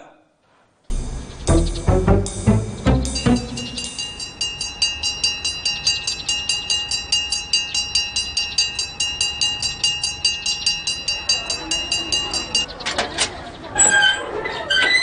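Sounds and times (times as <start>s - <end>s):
school bell ringing rapidly: 3.0s - 12.7s.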